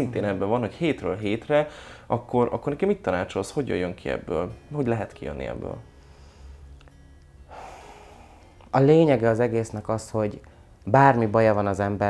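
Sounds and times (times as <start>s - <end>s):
low room hum: 0.0s - 12.0s
person breathing in: 1.7s - 2.1s, 6.0s - 6.7s, 7.5s - 8.7s.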